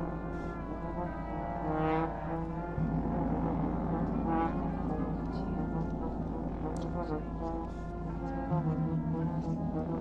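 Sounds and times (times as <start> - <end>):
brass ensemble playing held chords: 0.0 - 10.0.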